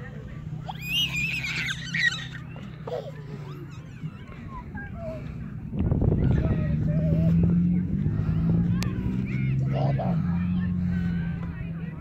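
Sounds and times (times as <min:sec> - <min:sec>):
toddler squealing: 0:00.7 - 0:04.2.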